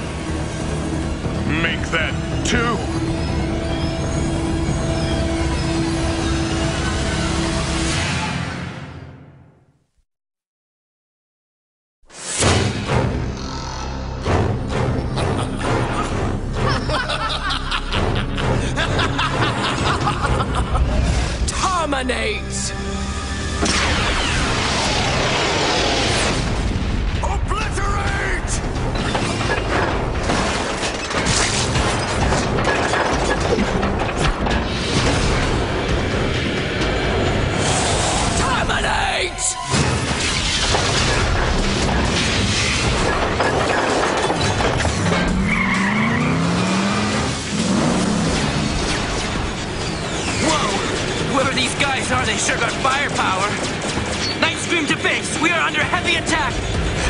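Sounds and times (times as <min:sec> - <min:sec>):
background music: 0:00.0 - 0:09.8, 0:12.1 - 0:57.0
weapon blast: 0:23.6 - 0:27.6
sci-fi battle blasts: 0:23.6 - 0:39.0, 0:39.6 - 0:57.0
explosion rumbling: 0:23.8 - 0:30.8.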